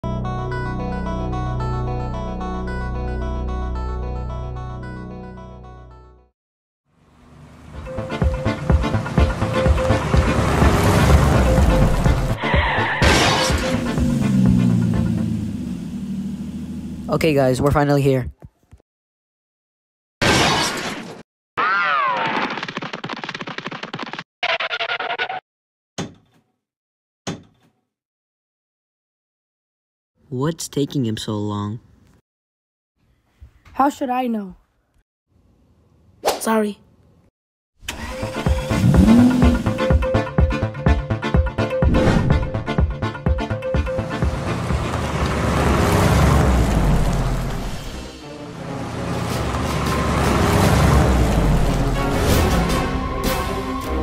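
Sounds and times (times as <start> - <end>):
car driving past: 8.9 - 13.0, 37.9 - 39.9, 44.0 - 53.8.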